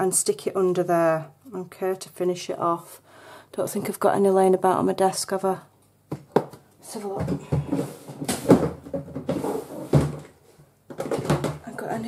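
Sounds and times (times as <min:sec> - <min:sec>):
rummaging in plastic box: 0:07.0 - 0:10.3.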